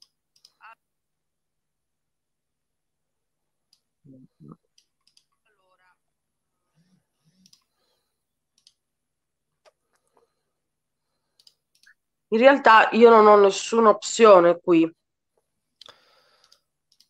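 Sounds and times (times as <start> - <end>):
faint computer mouse clicks: 8.5 - 8.8, 11.3 - 12.0, 15.8 - 17.0.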